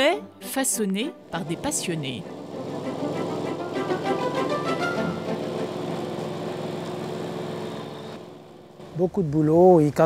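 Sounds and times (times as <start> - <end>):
background music: 0.0 - 6.5
lawn mower engine running: 1.2 - 9.9.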